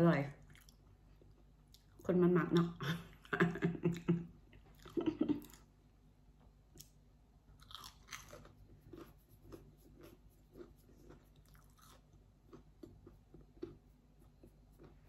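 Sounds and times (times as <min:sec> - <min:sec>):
soft chewing: 0:00.2 - 0:15.0
crunch of biting food: 0:07.6 - 0:15.0.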